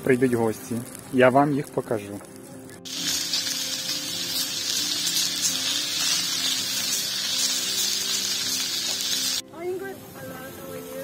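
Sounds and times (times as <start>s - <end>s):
sausages sizzling on a hotplate: 0.0s - 11.0s.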